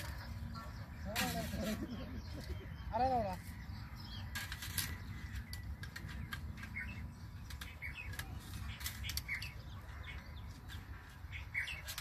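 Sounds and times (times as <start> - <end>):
bird chirp: 0.0 - 12.0
steel wire clicking and rattling: 4.2 - 12.0.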